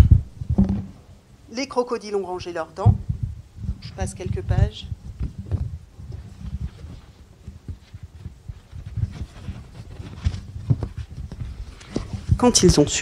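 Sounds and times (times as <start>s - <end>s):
book knocks and bumps: 0.5s - 1.0s, 6.4s - 12.4s
pages rustling: 5.2s - 12.9s.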